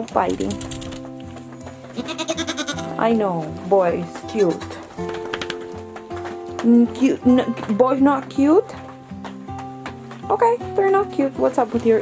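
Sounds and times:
background music with held tones: 0.0 - 12.0
goat bleating: 1.9 - 3.0, 4.3 - 4.9.

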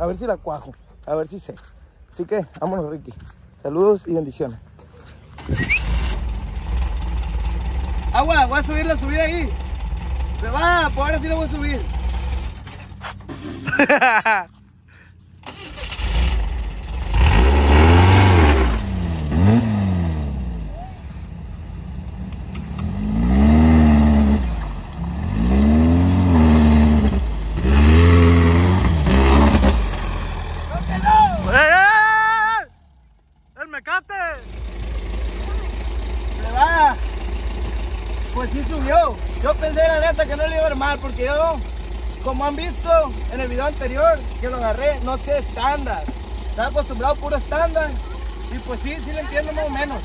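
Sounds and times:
engine idling: 4.6 - 14.0, 14.8 - 50.0
buggy engine revving: 4.7 - 14.4, 15.4 - 50.0.

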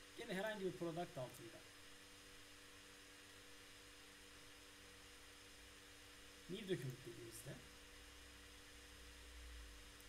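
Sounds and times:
faint electrical hum and hiss: 0.0 - 10.0.

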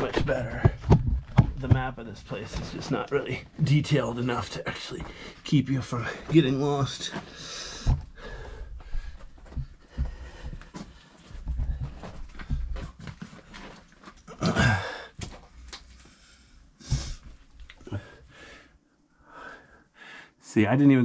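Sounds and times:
rock and gear knocks and scrapes: 0.0 - 5.2
person breathing: 5.0 - 5.4, 7.2 - 12.8, 14.5 - 15.2, 16.0 - 20.4.

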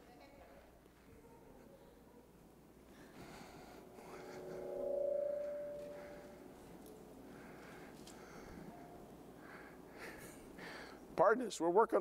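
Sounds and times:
feedback ringing tone: 3.8 - 6.8.

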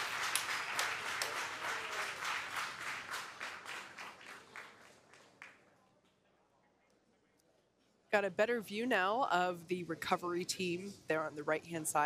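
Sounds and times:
group applause: 0.0 - 6.2.

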